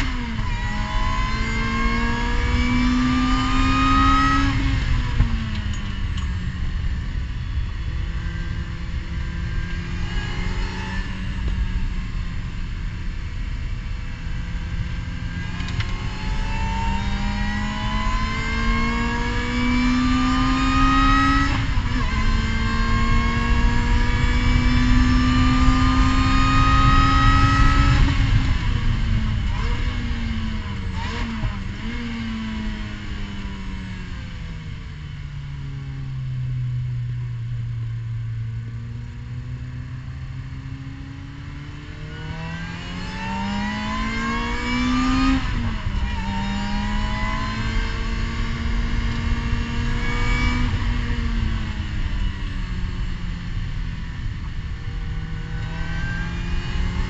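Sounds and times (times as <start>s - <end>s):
race car engine revving: 14.7s - 33.4s, 41.0s - 52.2s.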